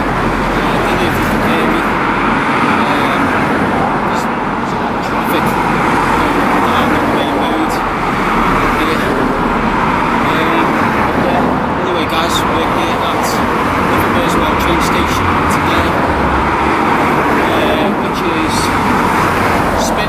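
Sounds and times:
cars driving past: 0:00.0 - 0:20.0.

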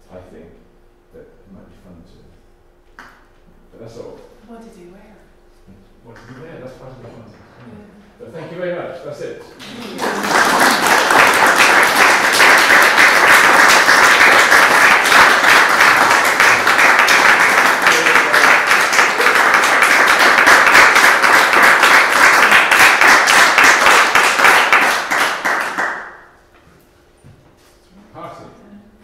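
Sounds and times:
audience applauding: 0:09.5 - 0:26.3.

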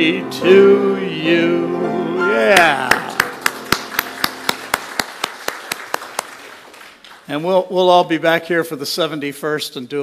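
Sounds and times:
nearby person clapping evenly: 0:02.6 - 0:06.9
small group applauding: 0:02.6 - 0:07.4.

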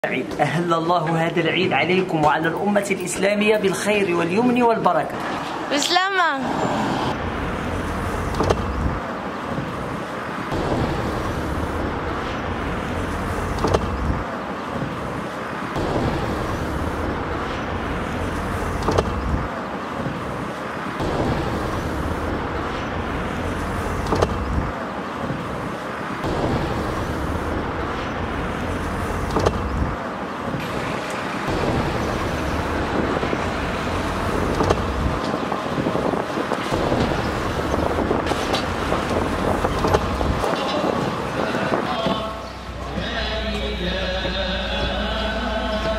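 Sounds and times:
truck engine and road noise: 0:00.0 - 0:45.9.

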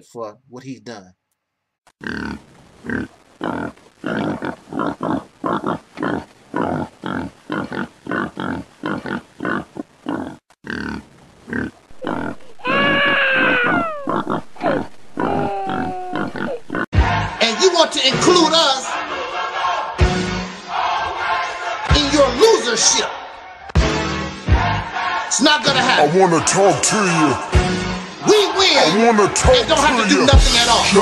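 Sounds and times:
short animal calls: 0:02.2 - 0:16.8
drawn-out falling squeal: 0:12.2 - 0:16.7
music: 0:17.0 - 0:22.5, 0:23.8 - 0:31.0.

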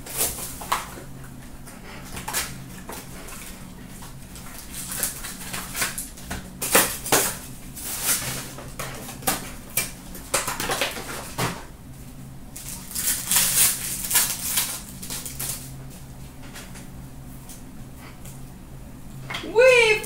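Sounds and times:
low steady hum: 0:00.0 - 0:20.0
card packs rustling and crinkling: 0:04.3 - 0:09.6, 0:12.6 - 0:15.8.

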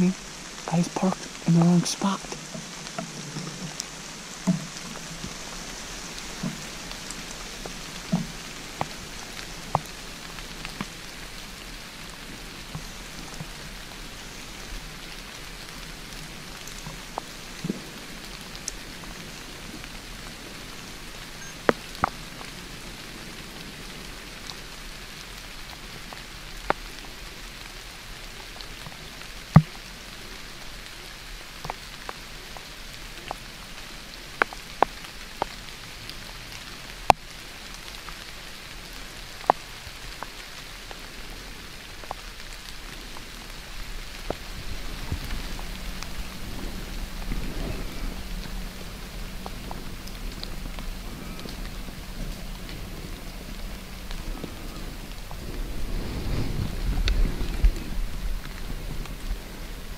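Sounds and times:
sharp ticks of raindrops: 0:00.0 - 0:59.9
steady rain in woods: 0:00.0 - 0:59.9.

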